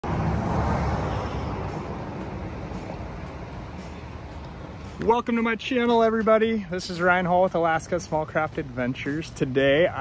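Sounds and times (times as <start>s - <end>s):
highway traffic passing: 0.0s - 10.0s.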